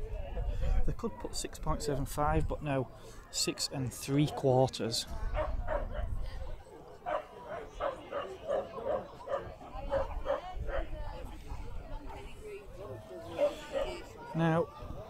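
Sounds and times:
dog barking: 0:05.4 - 0:06.1, 0:07.1 - 0:10.8.

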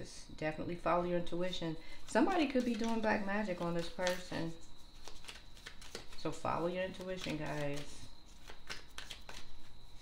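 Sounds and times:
cards being shuffled: 0:02.2 - 0:10.0.

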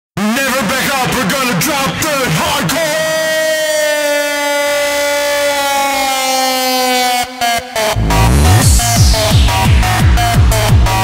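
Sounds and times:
held synth note gliding down: 0:08.0 - 0:10.2.

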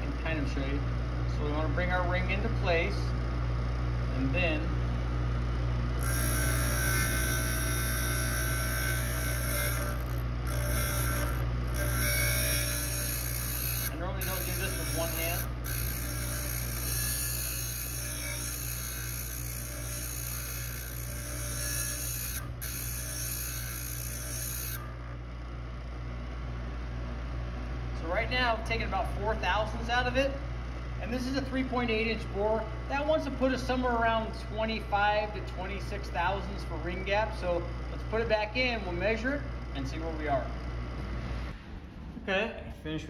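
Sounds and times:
motor hum: 0:00.0 - 0:42.2
grinding wheel hiss: 0:06.0 - 0:25.0.

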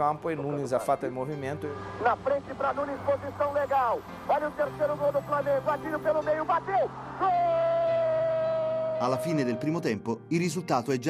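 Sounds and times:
commentator shouting: 0:06.0 - 0:09.8.

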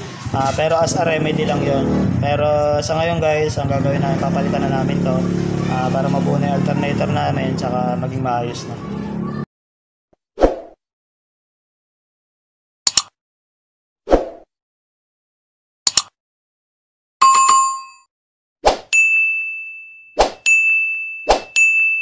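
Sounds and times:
short sharp clicks: 0:12.9 - 0:13.2, 0:15.9 - 0:16.2
bell-like ding: 0:17.2 - 0:18.1, 0:18.9 - 0:22.0
quick strikes with ringing tone: 0:20.2 - 0:22.0.

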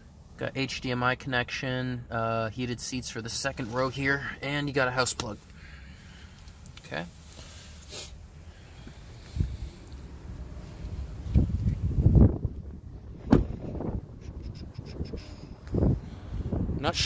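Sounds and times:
dull thumps: 0:13.2 - 0:14.0.

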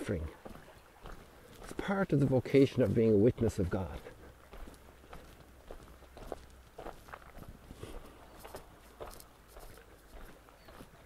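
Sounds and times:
faint footsteps walking: 0:00.0 - 0:11.0.

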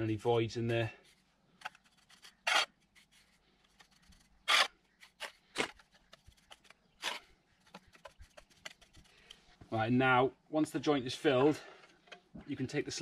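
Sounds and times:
trowel scraping mortar on slate: 0:01.7 - 0:09.1.

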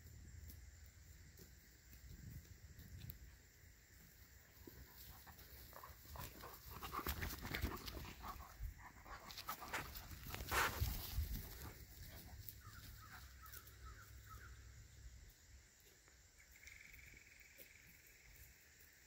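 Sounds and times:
dogs play-fighting on grass: 0:00.0 - 0:16.7.

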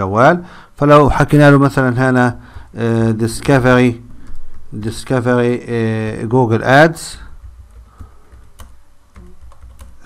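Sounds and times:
low steady hum: 0:00.0 - 0:10.0
keystrokes on computer keyboard: 0:07.3 - 0:10.0.

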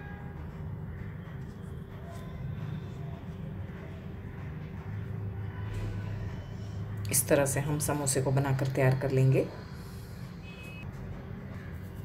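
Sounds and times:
low background rumble and hum: 0:00.0 - 0:12.0.

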